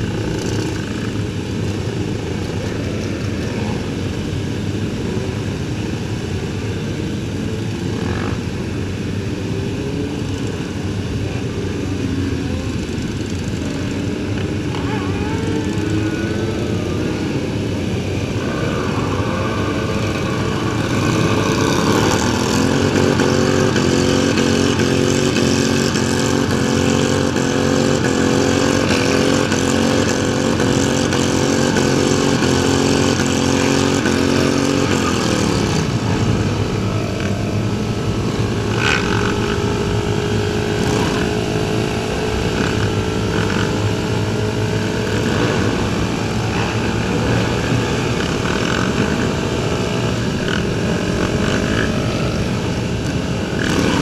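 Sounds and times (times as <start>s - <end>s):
sport bike engine: 0.0s - 54.0s.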